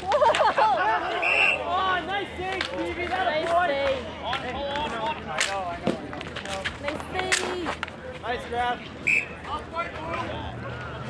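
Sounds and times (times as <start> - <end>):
sticks and ball clacking on asphalt: 2.1 - 8.3.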